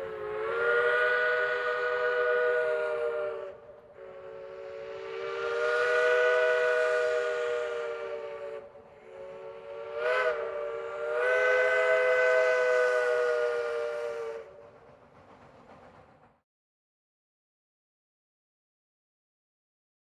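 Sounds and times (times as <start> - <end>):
steam locomotive whistle: 0.0 - 14.8.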